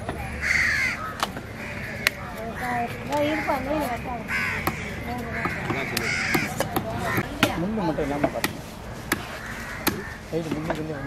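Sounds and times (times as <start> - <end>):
voices and calls: 0.0 - 11.0.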